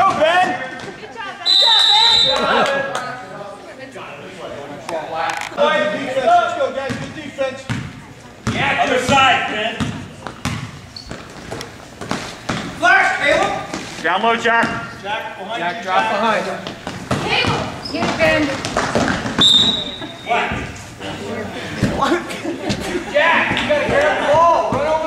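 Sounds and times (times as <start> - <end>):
voices in echoing hall: 0.0 - 25.0
referee's whistle: 1.4 - 2.4, 19.4 - 20.3
basketball dribbling on gym floor: 7.7 - 12.8.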